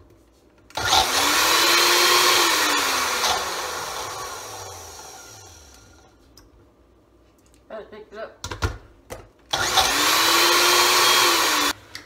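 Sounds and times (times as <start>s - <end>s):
blender motor chopping food: 0.8s - 5.9s, 9.5s - 11.8s.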